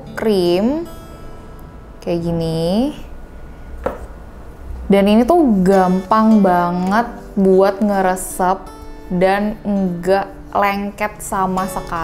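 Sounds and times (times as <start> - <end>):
plastic tube tapping on table: 3.8 - 4.1.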